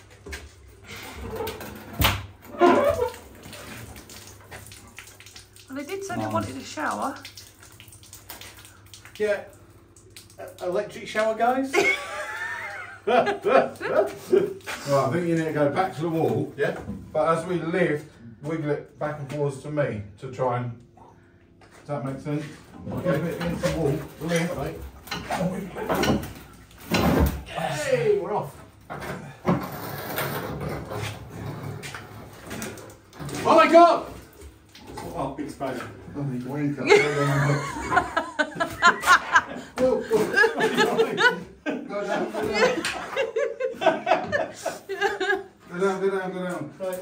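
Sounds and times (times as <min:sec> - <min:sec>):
metal tank scraping against wall: 0:28.9 - 0:33.6.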